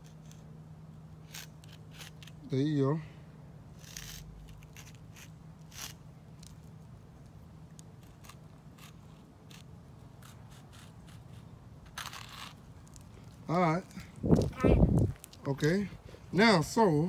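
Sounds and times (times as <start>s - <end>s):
chalk scratching on concrete: 1.2s - 2.4s, 3.8s - 6.5s, 8.0s - 13.0s.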